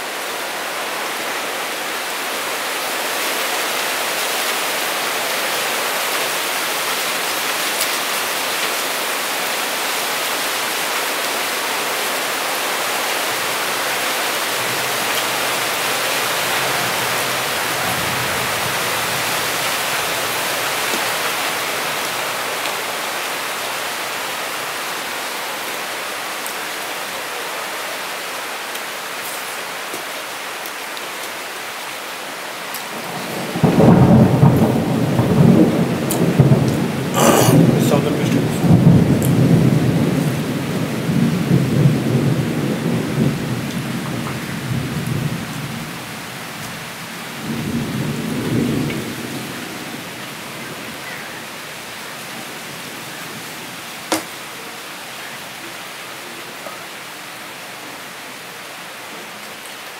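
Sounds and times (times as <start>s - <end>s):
steady rain: 0.0s - 59.9s
thunder rumbling: 33.0s - 45.8s
sharp thunder crack: 33.4s - 40.1s.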